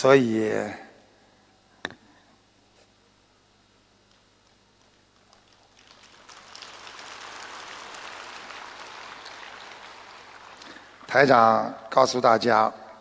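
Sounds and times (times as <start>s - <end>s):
audience applause: 5.1s - 11.7s.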